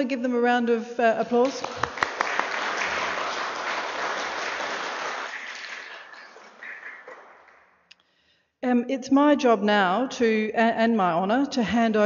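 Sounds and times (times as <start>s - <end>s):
audience applauding: 1.4s - 7.7s.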